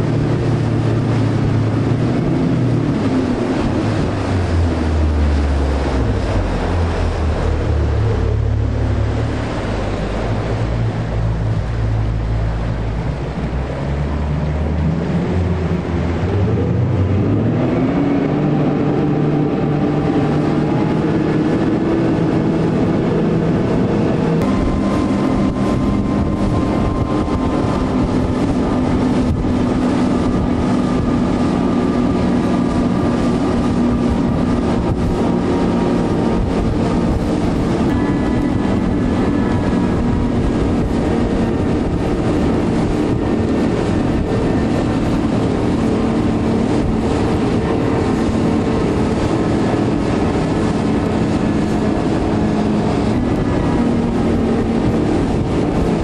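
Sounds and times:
motorboat outboard motors: 0.0 - 56.0
rushing water: 0.0 - 56.0
rushing wind: 0.0 - 56.0.

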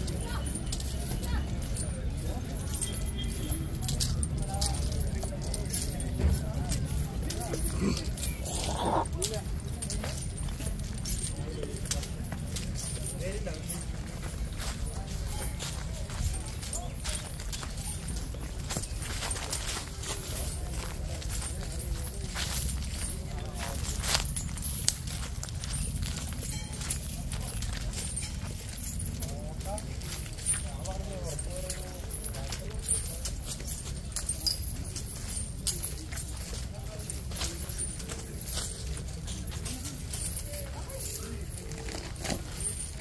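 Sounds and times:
chains clinking and jangling: 0.0 - 43.0
people's voices: 0.0 - 43.0.

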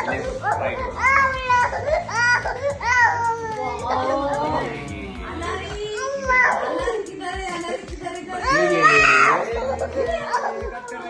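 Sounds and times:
toddler crying: 0.0 - 7.8, 8.4 - 11.0.

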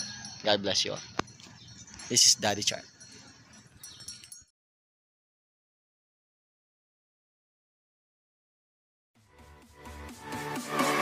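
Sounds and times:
light clinks: 0.0 - 4.5.

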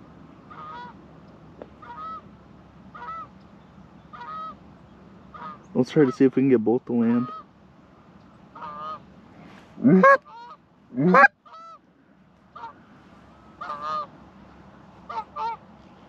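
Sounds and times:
goose call honks and clucks: 0.5 - 1.0, 5.3 - 6.2, 7.1 - 7.5, 8.6 - 9.0, 9.8 - 11.8, 12.6 - 12.8, 13.6 - 14.1.

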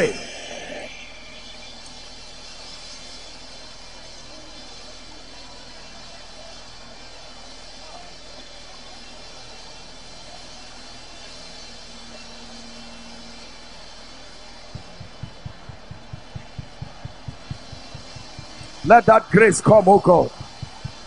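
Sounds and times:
low regular thumping beat: 14.7 - 21.0
congregation praying aloud: 18.8 - 20.4.

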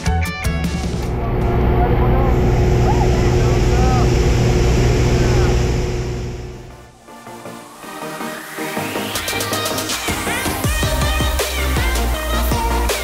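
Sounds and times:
small aircraft engine and propeller drone: 0.9 - 6.9
wind rush: 0.9 - 6.9.

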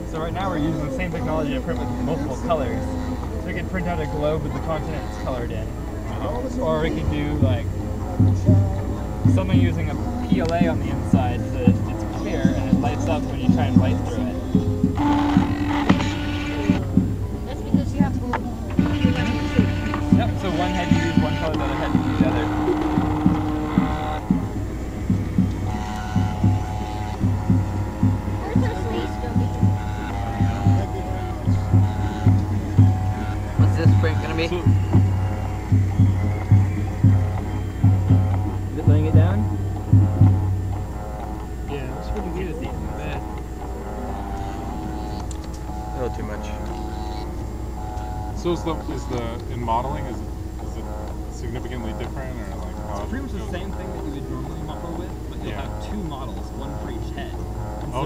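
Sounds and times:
low hum: 0.0 - 58.0
printer stepper motors humming: 0.0 - 58.0.

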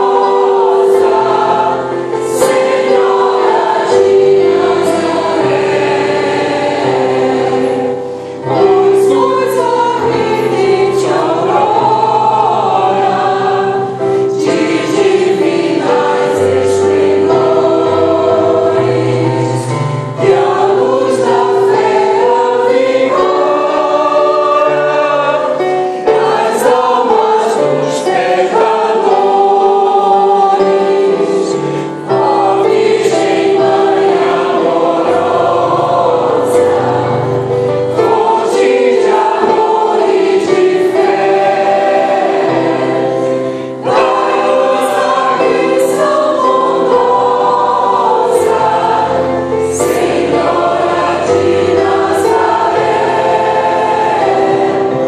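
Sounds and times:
choir singing a hymn: 0.0 - 55.0
digital piano: 0.0 - 55.0.

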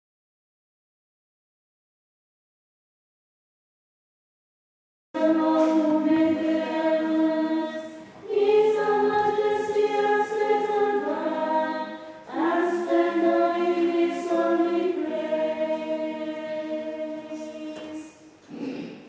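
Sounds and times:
choir singing a hymn: 5.2 - 18.4.

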